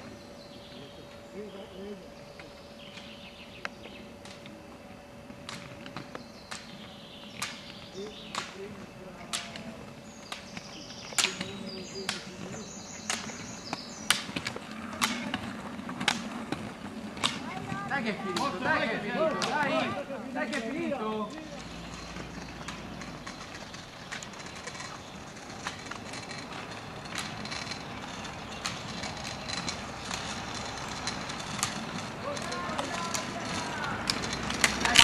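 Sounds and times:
ski pole tips clicking on asphalt: 7.3 - 19.8, 20.4 - 35.0.

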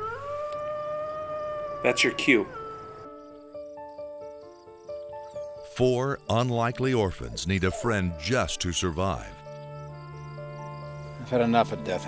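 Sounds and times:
wolf howling: 0.0 - 3.5, 7.4 - 8.2.

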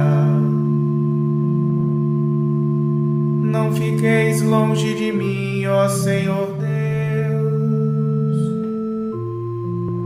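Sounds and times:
steady held instrumental drone chord: 0.0 - 10.0.

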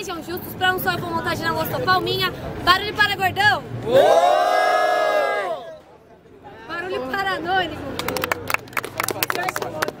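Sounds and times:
crowd clapping: 7.8 - 10.0.

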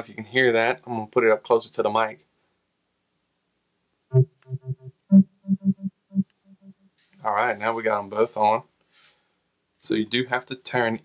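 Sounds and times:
speaker power-on tune: 4.1 - 6.9.

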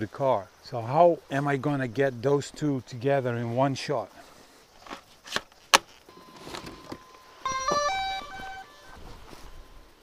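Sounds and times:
faint steady tone: 6.0 - 10.0
electronic beeps tune: 6.1 - 9.2.

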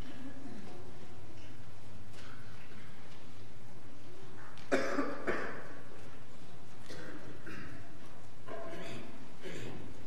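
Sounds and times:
person coughing: 4.7 - 5.8, 6.9 - 7.9.

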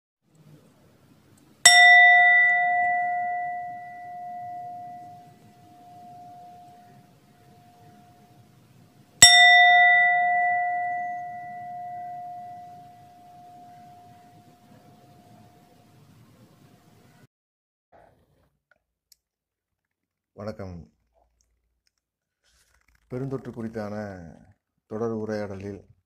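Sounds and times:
singing bowl ringing: 1.6 - 16.2.

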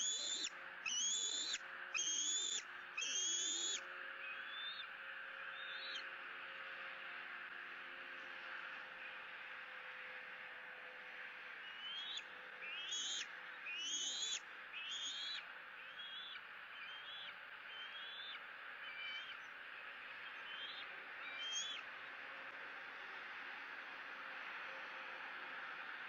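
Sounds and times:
eagle calling with whistled notes: 0.0 - 4.9, 5.5 - 6.0, 11.6 - 19.5, 20.2 - 21.9.

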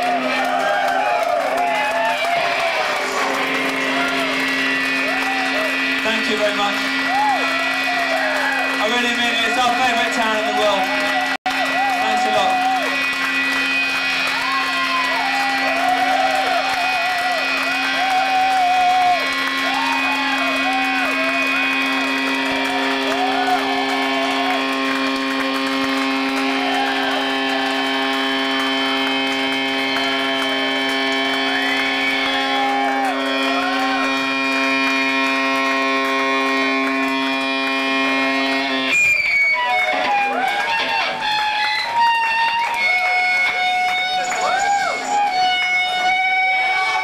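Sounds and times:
amplified drone of held tones: 0.0 - 47.0.

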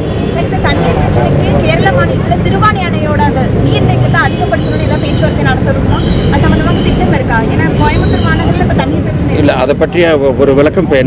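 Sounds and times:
man speaking close: 9.4 - 11.0.

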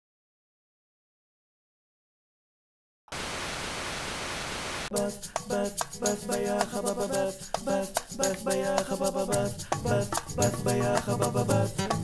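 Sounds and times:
tv static hiss: 3.1 - 4.9.

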